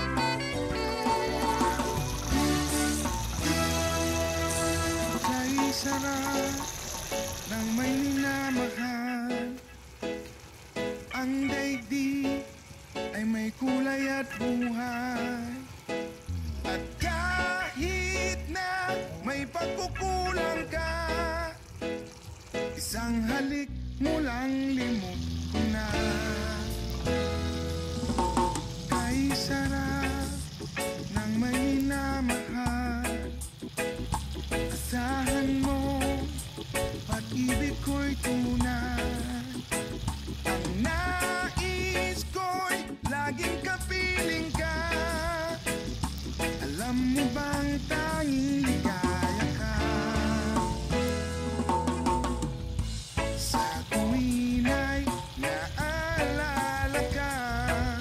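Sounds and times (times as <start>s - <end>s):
background music: 0.0s - 58.0s
background song: 0.0s - 58.0s
food sizzling in a wok: 0.0s - 58.0s.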